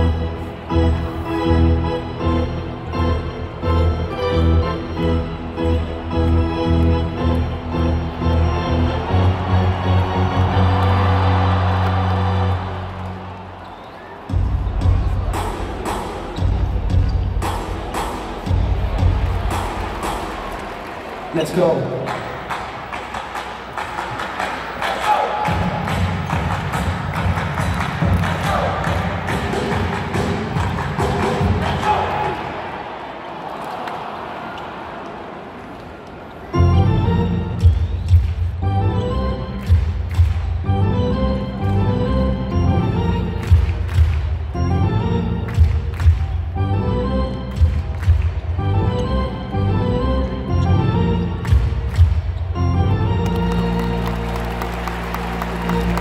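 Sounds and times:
music playing underneath: 0:00.0 - 0:13.6, 0:14.2 - 0:32.2, 0:36.5 - 0:56.0
arena crowd noise: 0:00.0 - 0:56.0
loud music with heavy bass beat: 0:14.3 - 0:20.5.

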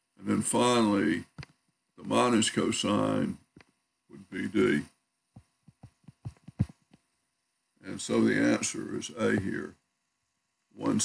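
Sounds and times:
stylus tapping on tablet screen: 0:05.3 - 0:07.1.

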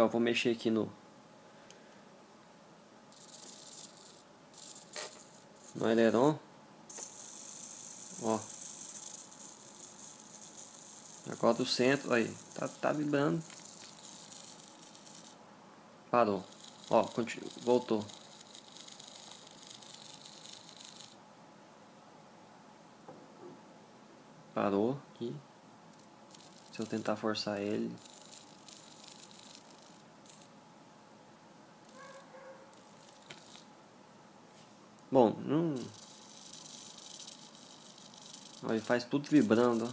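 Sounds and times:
servo buzzing rattle: 0:03.1 - 0:06.2, 0:06.9 - 0:15.4, 0:16.4 - 0:21.2, 0:25.9 - 0:30.5, 0:31.8 - 0:33.7, 0:35.8 - 0:39.9.

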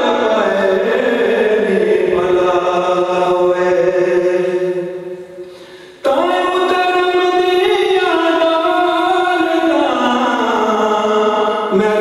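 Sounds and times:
man chanting into microphone: 0:00.0 - 0:05.3, 0:06.0 - 0:12.0.

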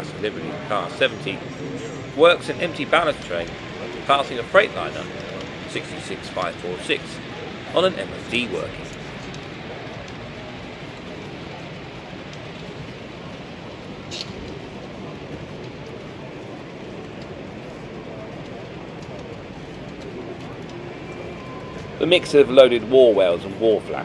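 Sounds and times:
exhibition hall hubbub: 0:00.0 - 0:24.0.

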